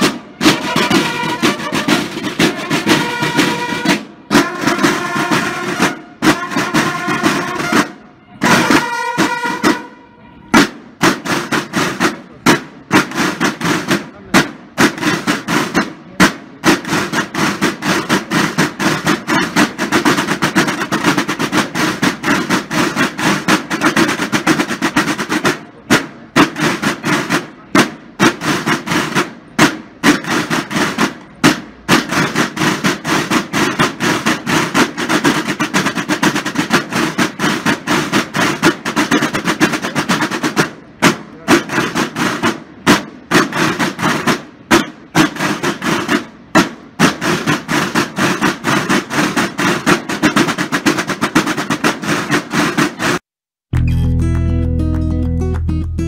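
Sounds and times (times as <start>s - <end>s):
marching snare drums: 0.0s - 53.3s.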